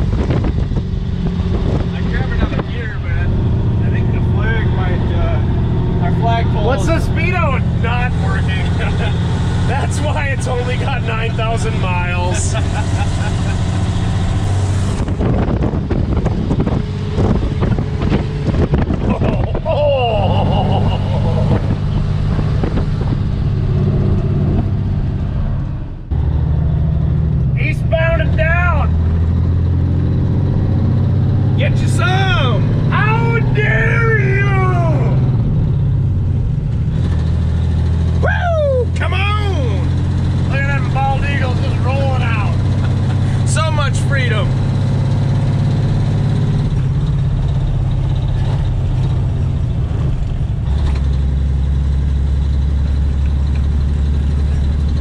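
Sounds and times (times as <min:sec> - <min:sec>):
diesel truck engine drone: 0:00.0 - 0:55.0.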